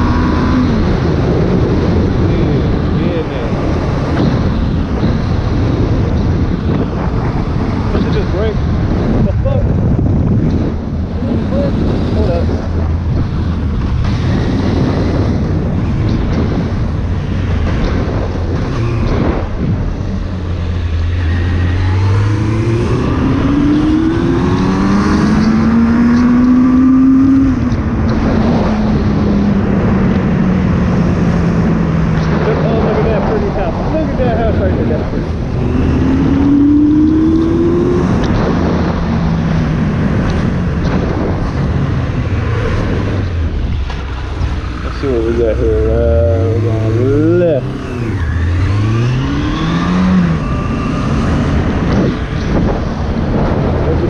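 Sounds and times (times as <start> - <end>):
motorcycle engine revving: 0.0 - 54.0
wind noise on microphone: 0.0 - 54.0.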